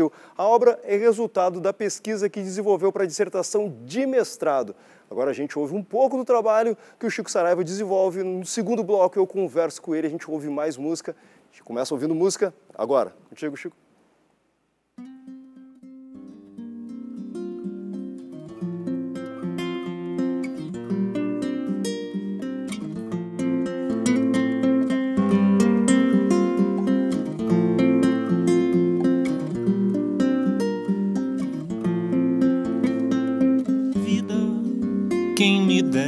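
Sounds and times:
classical guitar fingerstyle: 0:15.0 - 0:36.0.

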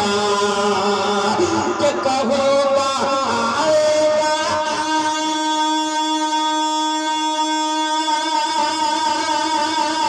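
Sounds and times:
man singing long note: 0:00.0 - 0:10.0.

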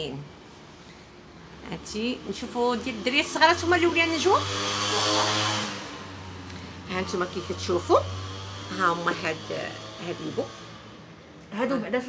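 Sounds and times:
steady electrical hum: 0:00.0 - 0:12.0
rushing whirring noise: 0:01.2 - 0:11.4.

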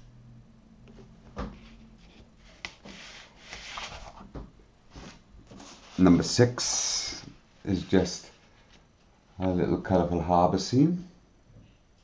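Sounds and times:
paper rubbing and rustling: 0:01.6 - 0:04.3.

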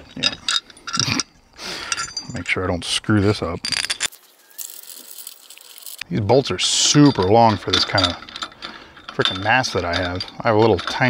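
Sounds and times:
metal bracket and bolts rattling: 0:00.0 - 0:02.7, 0:03.3 - 0:11.0.

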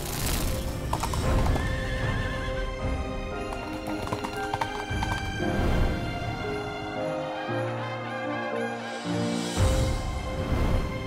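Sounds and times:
background music: 0:00.0 - 0:11.0
galloping horse hoofbeats: 0:00.6 - 0:05.4.

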